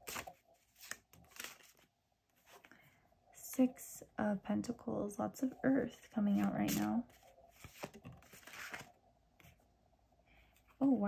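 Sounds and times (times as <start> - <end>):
tarot cards rustling and clicking: 0.0 - 2.8, 5.9 - 9.6.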